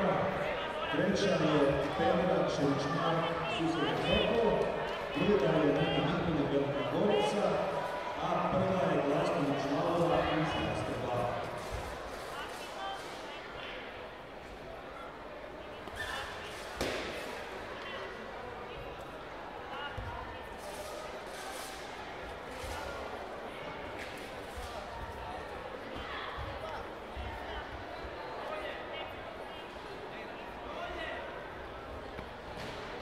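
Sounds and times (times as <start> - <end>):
shouts and chatter: 0.0 - 33.0
sharp smack: 16.8 - 17.2.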